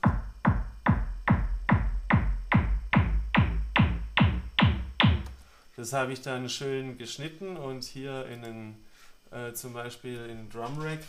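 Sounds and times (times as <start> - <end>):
synthesized kick drum: 0.0 - 5.4.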